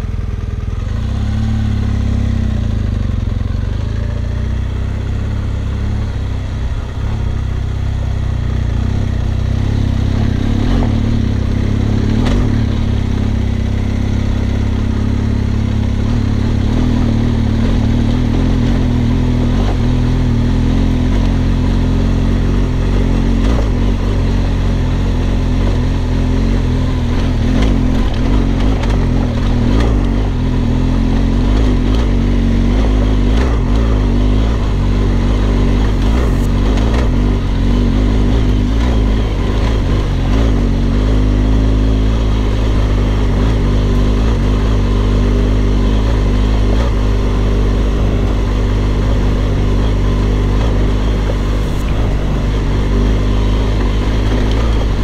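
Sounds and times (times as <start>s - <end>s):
gravel ticking under tyres: 0.0s - 55.0s
motorcycle engine running: 0.0s - 55.0s
wind noise: 32.8s - 40.7s, 50.4s - 55.0s.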